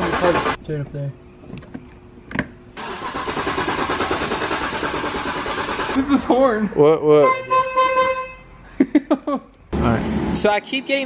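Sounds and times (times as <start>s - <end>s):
car engine starting and running: 0.0s - 0.6s, 2.8s - 6.6s.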